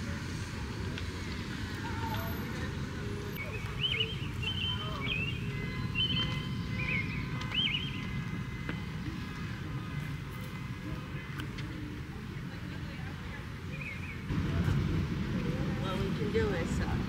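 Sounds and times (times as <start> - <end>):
bird chirps: 3.4 - 8.9
steady low rumble: 14.1 - 17.0.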